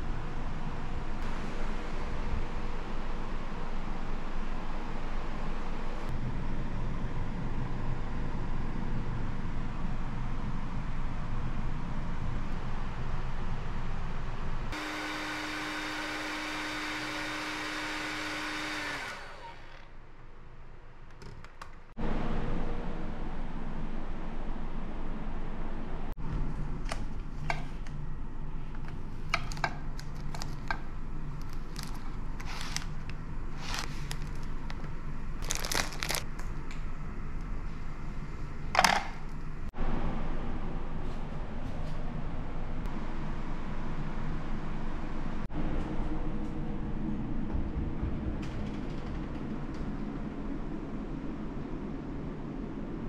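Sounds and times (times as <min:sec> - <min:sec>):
low room hum: 0:00.0 - 0:53.0
hair dryer running: 0:14.7 - 0:19.9
low rumble: 0:22.0 - 0:26.9, 0:39.4 - 0:53.0
plastic packets crinkling: 0:31.3 - 0:36.3.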